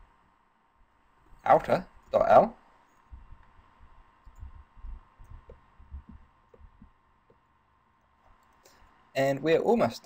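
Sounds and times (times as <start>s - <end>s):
faint high electrical whine: 0.0s - 10.0s
soft low thumps: 3.0s - 8.4s.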